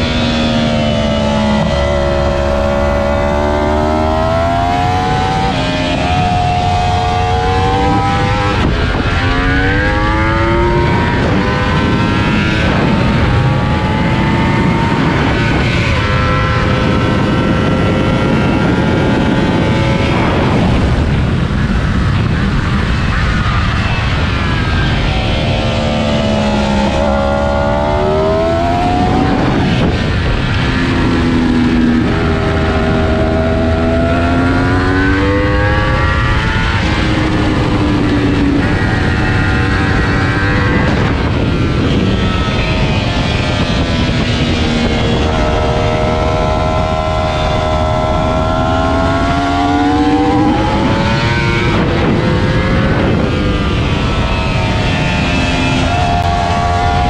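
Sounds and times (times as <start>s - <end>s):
sportbike engine accelerating: 0.0s - 57.0s
steady low rush: 0.0s - 57.0s.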